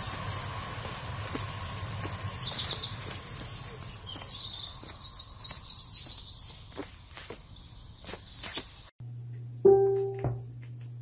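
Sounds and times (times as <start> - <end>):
low background rumble: 0.0 - 4.9
songbird singing: 0.0 - 8.9.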